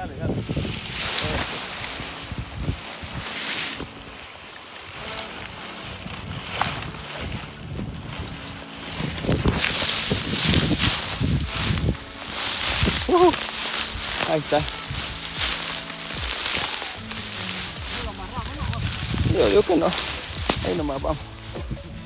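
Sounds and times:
cloth rubbing on microphone: 0:00.0 - 0:22.0
dry leaves rustling: 0:00.0 - 0:22.0
wind noise: 0:00.0 - 0:22.0.

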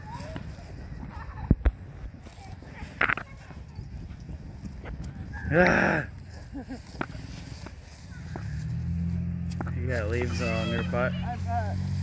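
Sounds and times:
person laughing: 0:05.4 - 0:07.0.

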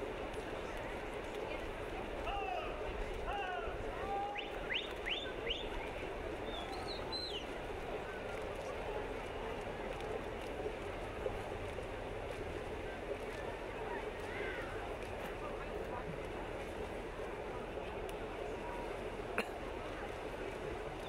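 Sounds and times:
crowd murmur: 0:00.0 - 0:21.0
swimmers splashing: 0:00.0 - 0:21.0.

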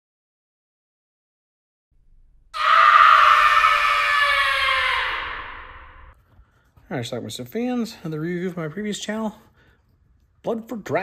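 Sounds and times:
scream sliding down in pitch: 0:02.6 - 0:06.1.

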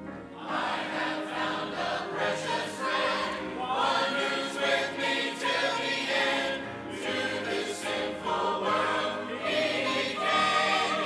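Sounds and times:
church choir singing a hymn: 0:00.0 - 0:11.0.

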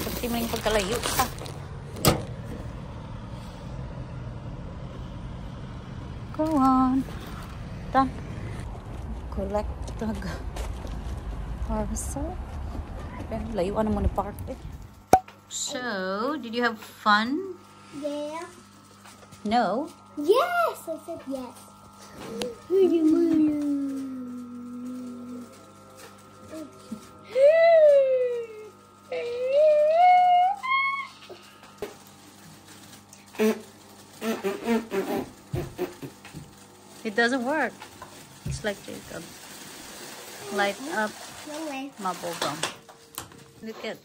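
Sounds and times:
vehicle engine humming: 0:00.0 - 0:44.0
girl humming: 0:22.2 - 0:25.7, 0:26.5 - 0:31.4.

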